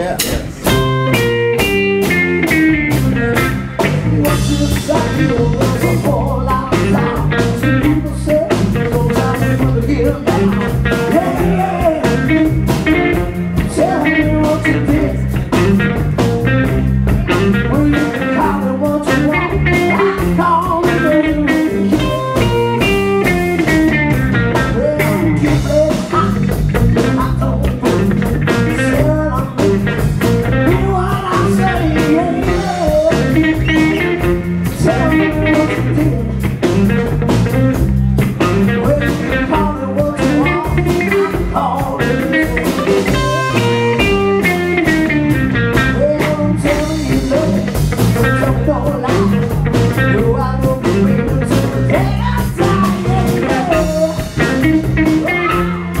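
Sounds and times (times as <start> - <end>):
bass: 0.0 - 56.0
drums: 0.0 - 56.0
electric guitar: 0.0 - 56.0
man singing: 3.1 - 37.8, 38.4 - 56.0.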